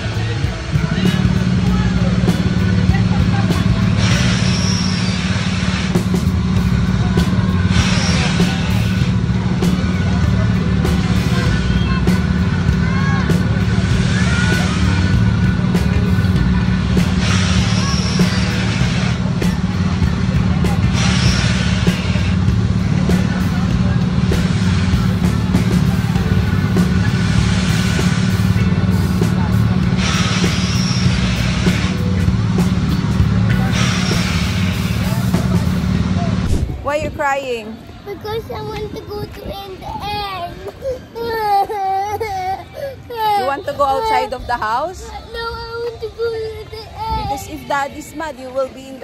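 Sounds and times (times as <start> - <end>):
rushing hiss of ride carriage: 0.0 - 37.0
low machine hum: 0.0 - 48.3.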